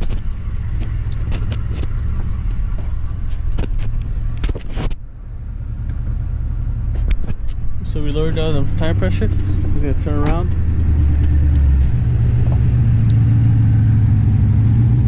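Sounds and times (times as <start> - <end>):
handling clicks and knocks: 0.0 - 5.0, 7.0 - 12.7
engine idling: 0.0 - 15.0.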